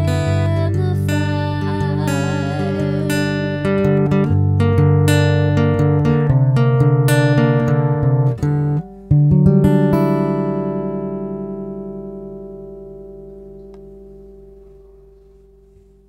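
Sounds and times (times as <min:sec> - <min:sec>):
acoustic guitar playing: 0:00.0 - 0:16.0.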